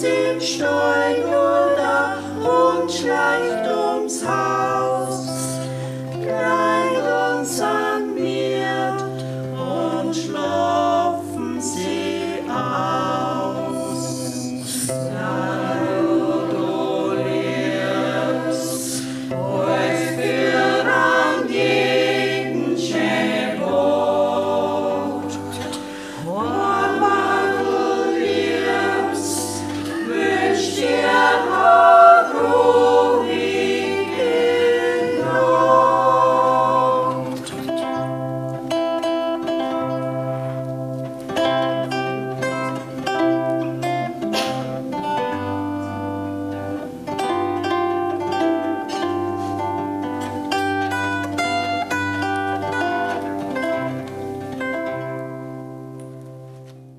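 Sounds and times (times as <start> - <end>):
mixed choir singing: 0.0 - 39.2
zither plucked notes: 0.0 - 56.8.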